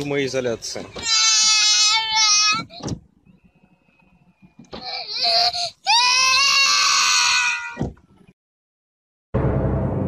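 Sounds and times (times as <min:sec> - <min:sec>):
child crying scream: 0:01.0 - 0:02.8, 0:04.8 - 0:07.8.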